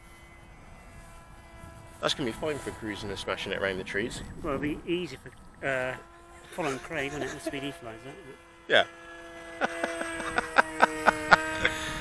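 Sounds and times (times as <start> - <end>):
electric motor and propeller whine: 0.0 - 12.0.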